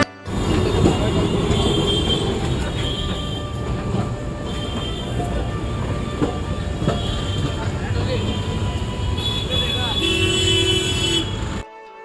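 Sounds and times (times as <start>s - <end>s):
tram rolling on street rails: 0.0s - 11.6s
steel wheels squealing: 0.3s - 10.6s.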